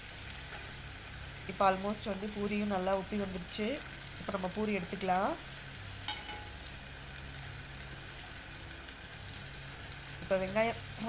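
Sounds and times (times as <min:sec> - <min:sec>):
dough sizzling in hot oil: 0:00.0 - 0:11.0.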